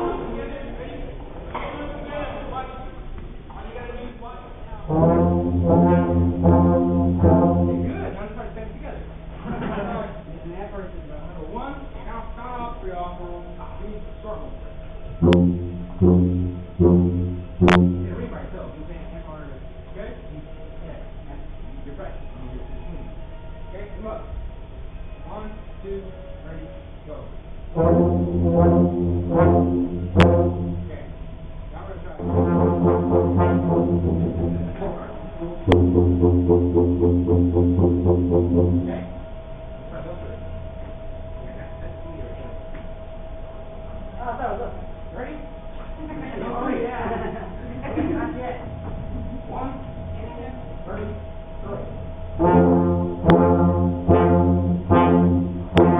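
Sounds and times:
brass section playing held notes: 4.8 - 8.3, 15.1 - 18.4, 27.7 - 31.1, 32.2 - 39.2, 52.4 - 55.9
deep bass line: 4.8 - 8.4, 15.1 - 18.7, 27.7 - 40.1, 50.2 - 55.9.

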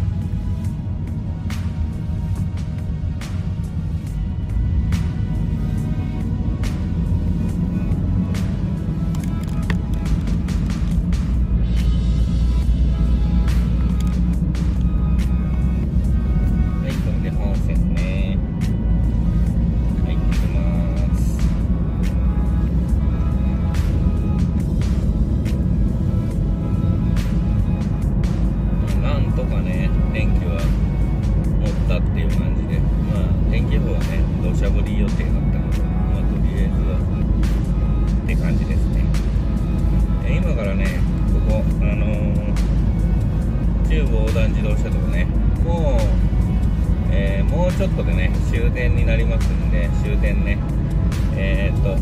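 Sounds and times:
car road and engine rumble: 0.0 - 52.0
music playing: 0.0 - 52.0.

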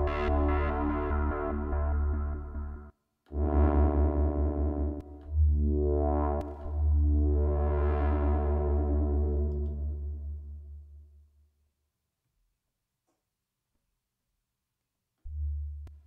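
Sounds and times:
synthesizer bass sweeps: 0.0 - 10.7.

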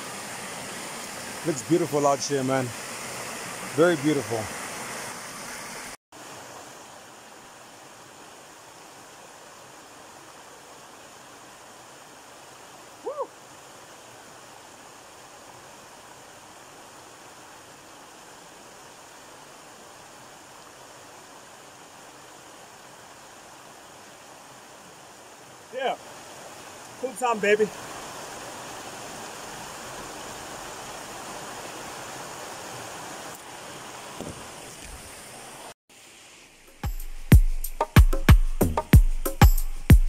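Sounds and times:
stream rushing over rocks: 0.0 - 36.8.

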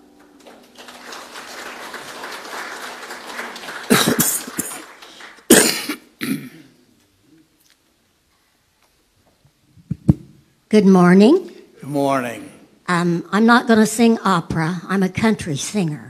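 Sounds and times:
congregation clapping: 0.0 - 6.2
loud coughs near microphone: 3.9 - 4.9, 5.5 - 6.8.

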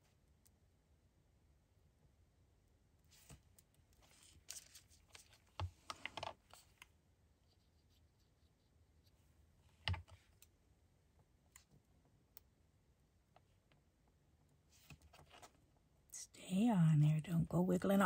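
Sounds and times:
paper rustling: 4.0 - 6.8.

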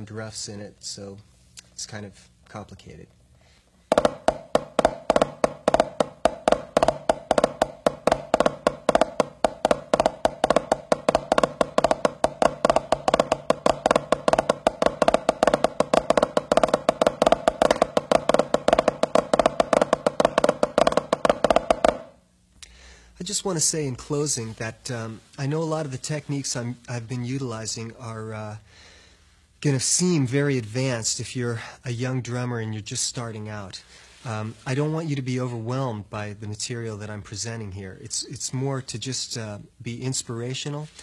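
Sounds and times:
fast drumstick strokes: 3.9 - 22.2.

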